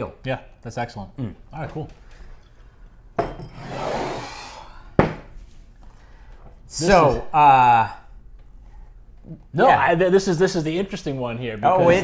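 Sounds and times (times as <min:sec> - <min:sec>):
glass bottle scraping on wood: 0:03.3 - 0:04.2.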